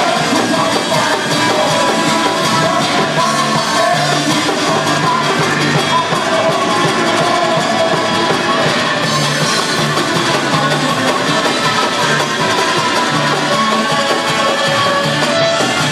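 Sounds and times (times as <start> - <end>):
acoustic guitars: 0.0 - 15.9
bass line: 0.0 - 15.9
drums: 0.0 - 15.9
men singing: 0.0 - 15.9.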